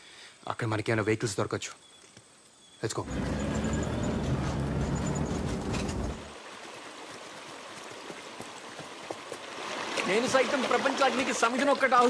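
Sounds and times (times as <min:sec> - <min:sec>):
truck engine rumbling: 0:03.0 - 0:06.4.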